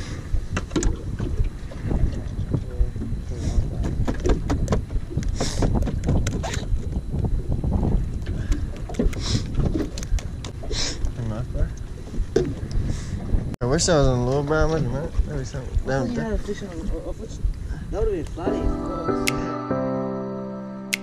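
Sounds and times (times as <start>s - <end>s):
wind buffeting microphone: 0.0s - 19.2s
knocks and rattles on deck: 3.8s - 6.4s.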